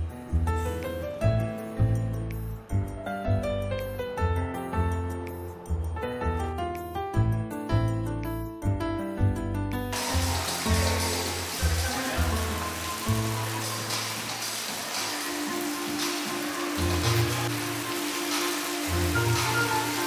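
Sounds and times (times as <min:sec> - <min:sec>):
steady rain hiss: 0:10.0 - 0:20.0.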